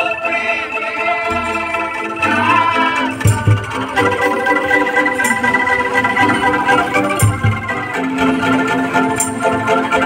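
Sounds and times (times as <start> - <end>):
bamboo angklung chords: 0.0 - 10.0
sharp percussion hits: 1.3 - 8.0.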